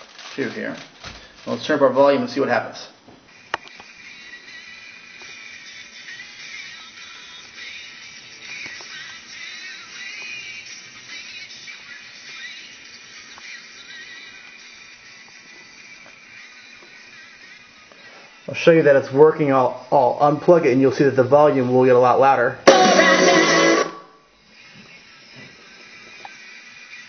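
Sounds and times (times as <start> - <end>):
thin music from tiny speaker: 0.0 - 27.0.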